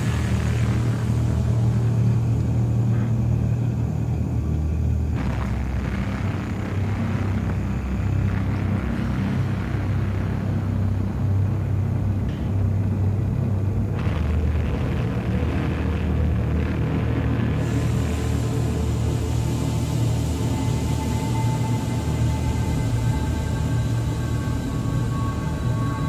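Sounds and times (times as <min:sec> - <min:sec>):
steady low rumble: 0:00.0 - 0:26.0.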